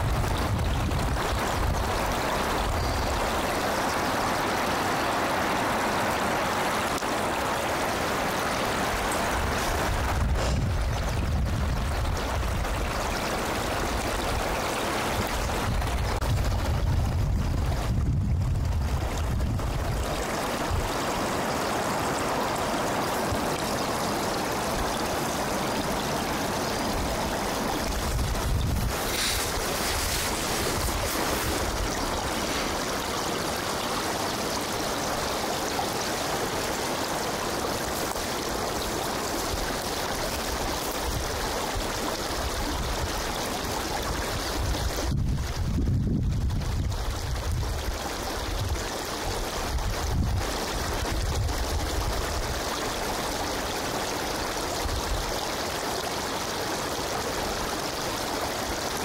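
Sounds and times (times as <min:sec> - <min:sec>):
wind rumble on microphone: 0:00.0 - 0:03.3, 0:09.3 - 0:14.5, 0:15.1 - 0:21.0, 0:27.8 - 0:33.0, 0:40.9 - 0:52.8.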